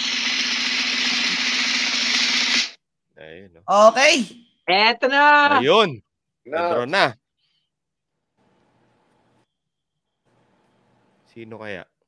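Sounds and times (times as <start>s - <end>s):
drum roll: 0.0s - 2.8s.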